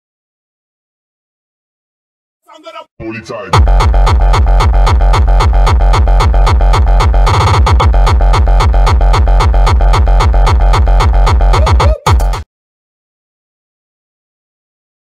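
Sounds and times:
electronic dance music: 2.5s - 12.4s.

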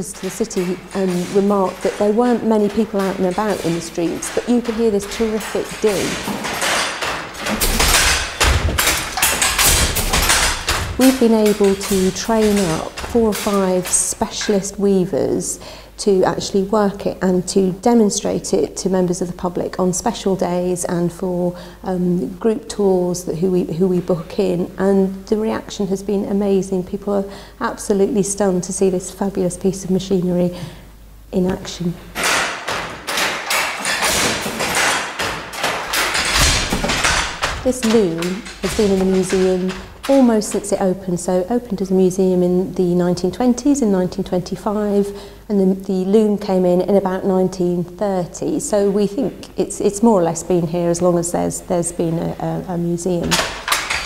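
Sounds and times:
hand loom knocking and clattering: 0.0s - 14.9s, 31.5s - 41.5s, 53.2s - 54.0s.

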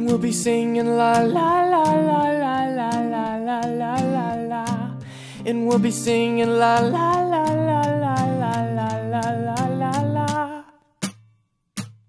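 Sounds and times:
pop-rock song with singing: 0.0s - 10.7s.

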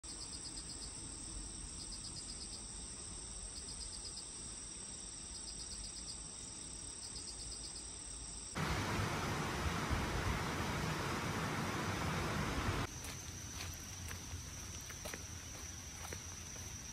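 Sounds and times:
insects trilling and chirping: 0.0s - 16.9s
steady rushing noise: 8.6s - 12.9s.

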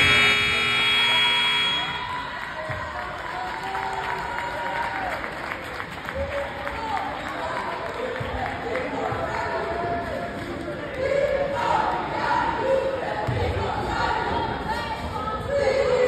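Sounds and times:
scoreboard buzzer blast: 0.0s - 2.3s.

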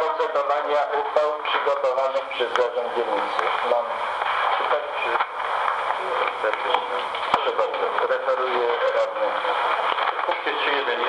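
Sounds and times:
radio-like hiss: 0.0s - 11.0s.

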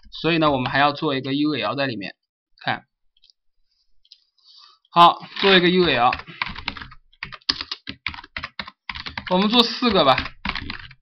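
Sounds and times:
computer keyboard typing: 5.3s - 11.0s.

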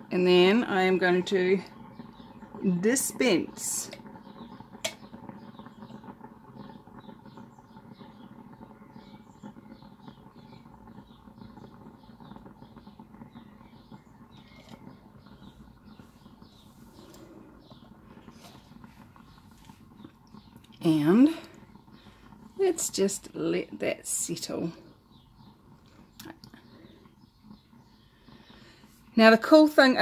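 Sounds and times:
faint steady rumble: 0.2s - 30.0s
light irregular ticks: 25.8s - 29.0s.

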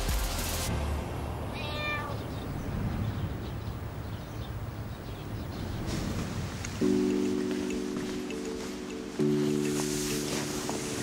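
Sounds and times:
cat meowing: 1.5s - 2.4s.

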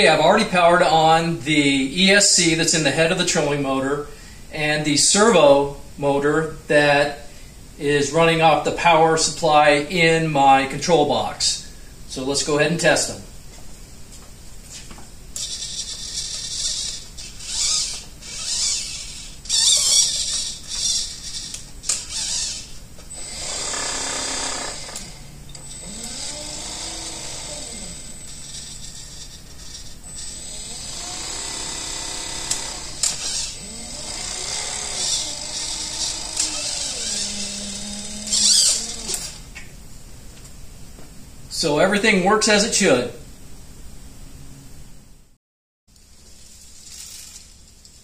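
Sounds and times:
servo buzzing in short bursts: 15.4s - 39.5s
electric motor whine: 15.4s - 39.6s.

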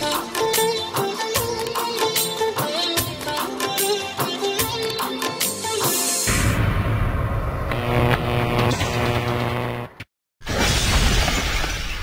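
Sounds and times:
loud shattering crash: 10.4s - 12.0s.

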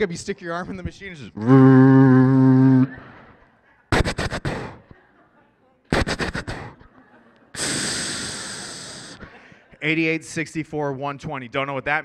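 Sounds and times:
mouth hiss: 3.9s - 4.8s, 5.9s - 6.8s, 7.6s - 9.3s
man making mouth clicking sounds: 3.9s - 4.9s, 5.9s - 6.9s, 7.6s - 9.3s.

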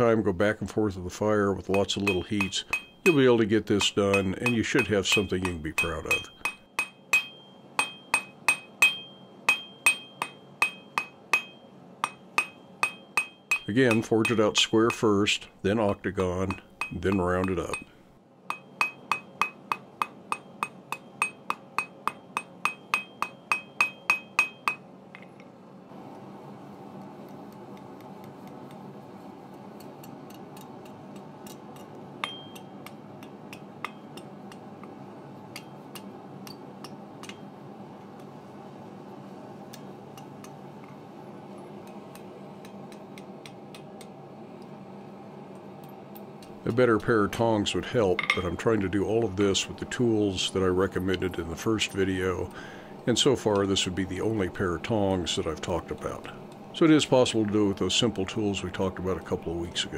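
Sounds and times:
hammer ringing on anvil: 1.7s - 15.0s, 16.4s - 24.9s, 32.2s - 34.3s.

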